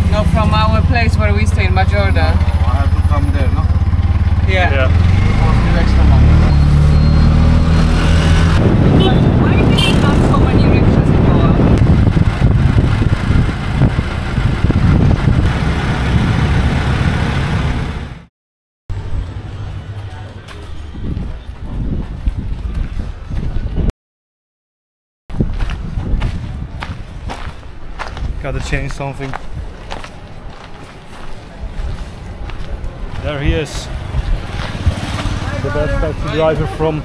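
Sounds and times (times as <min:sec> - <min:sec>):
auto-rickshaw engine: 0:00.0 - 0:18.3, 0:31.5 - 0:37.0
wind and road noise: 0:00.0 - 0:18.3, 0:18.9 - 0:23.9, 0:25.3 - 0:37.0
outdoor ambience: 0:18.9 - 0:23.9, 0:25.3 - 0:37.0.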